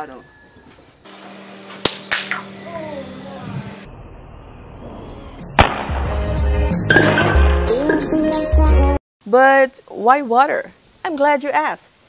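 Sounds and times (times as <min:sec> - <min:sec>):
hammer cracking glass bottle: 0:01.9 - 0:02.5
background music: 0:04.9 - 0:09.0.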